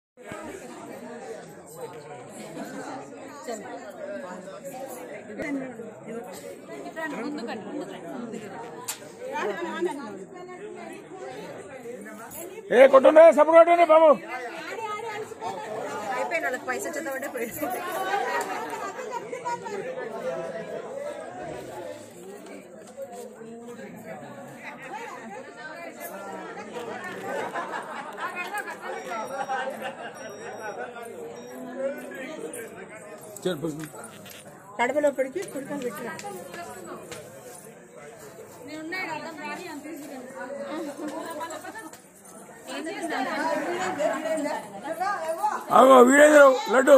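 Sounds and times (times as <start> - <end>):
crowd chatter: 0.2 - 46.9.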